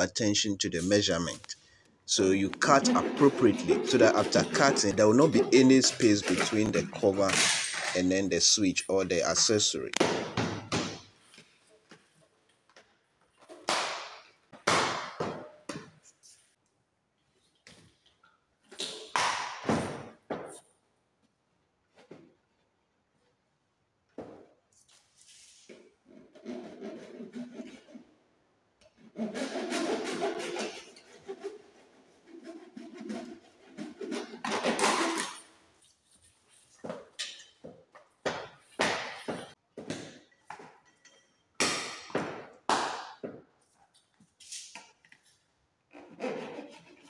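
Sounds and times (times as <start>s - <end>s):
plastic cover scraping: 2.4s - 7.1s.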